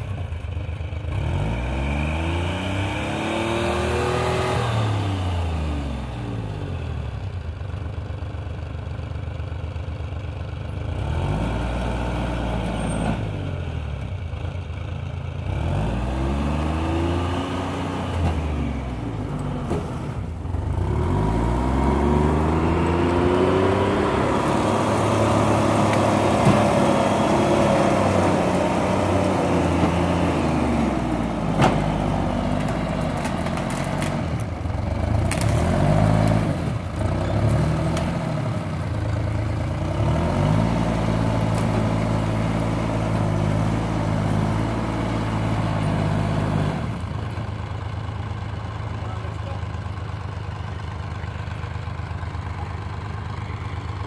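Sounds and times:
diesel engine revving: 0.8 - 7.5, 10.7 - 54.0.

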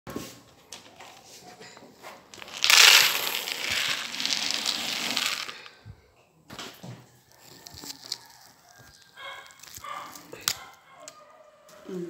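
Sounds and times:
kibble pouring into a bowl: 2.4 - 5.7.

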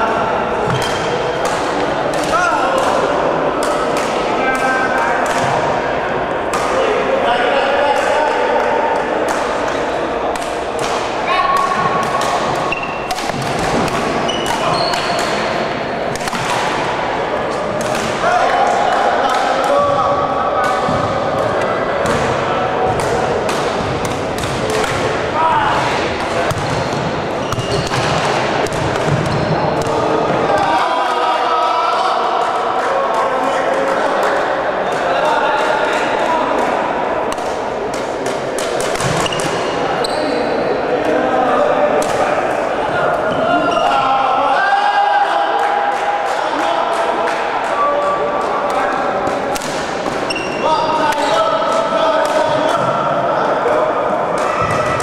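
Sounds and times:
echoing voices chatting and calling: 0.0 - 55.0.

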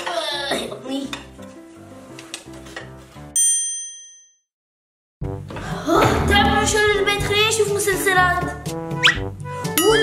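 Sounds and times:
light background music: 0.0 - 3.6, 5.2 - 10.0.

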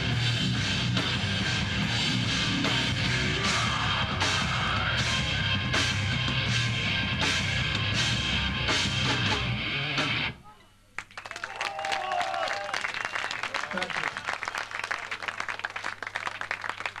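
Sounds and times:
hardcore band distorted guitars: 0.0 - 10.4
audience clapping and shouting: 11.0 - 17.0.

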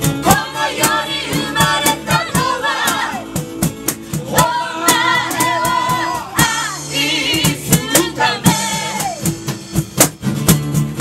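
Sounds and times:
acoustic guitars: 0.0 - 11.0
steady percussion beat: 0.0 - 11.0
women singing together: 0.1 - 9.3.

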